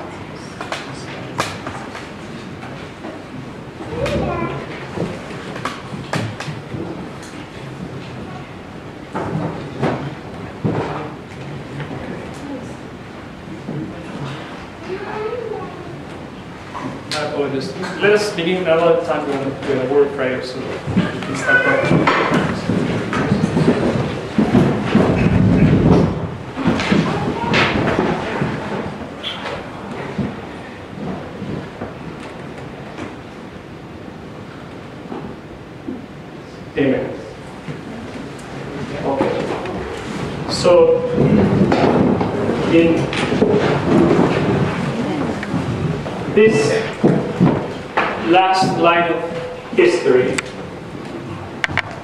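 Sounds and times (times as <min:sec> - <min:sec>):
room noise: 0:00.0 - 0:52.0.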